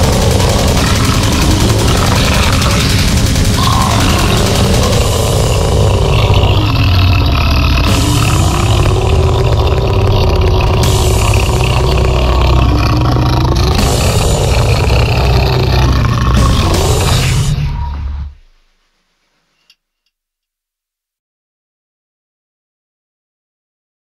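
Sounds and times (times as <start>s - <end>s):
heavy low rumble: 0.0s - 18.6s
distorted noise wall: 0.0s - 19.7s.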